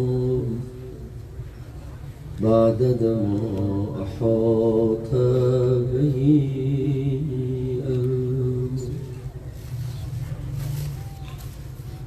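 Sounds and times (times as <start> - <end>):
man chanting: 0.0 - 1.1, 2.4 - 9.2.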